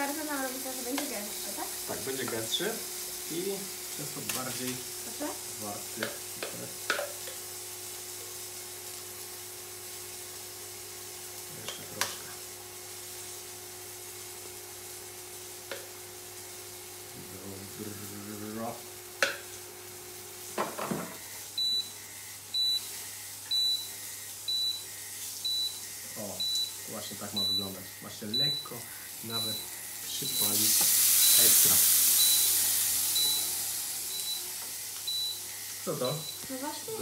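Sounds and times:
food sizzling in a frying pan: 0.0 - 37.0
hob short high beeps: 29.3 - 30.6.

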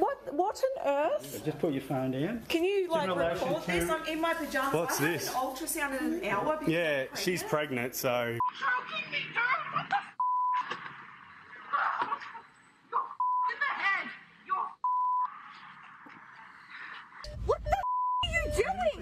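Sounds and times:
censor bleeps: 10.2 - 10.6, 13.2 - 13.6, 14.8 - 15.3, 17.2 - 19.0.

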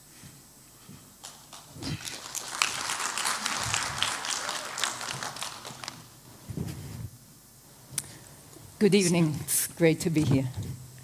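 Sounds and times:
audience applause: 1.2 - 6.2.

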